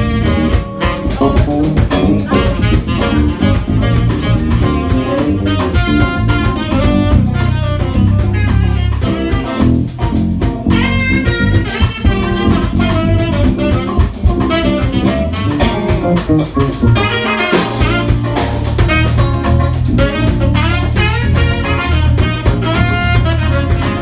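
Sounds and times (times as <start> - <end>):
bass guitar: 0.0 - 24.0
drum kit beat: 0.0 - 24.0
guitar: 0.0 - 24.0
piano: 0.0 - 24.0
tenor saxophone: 0.0 - 24.0.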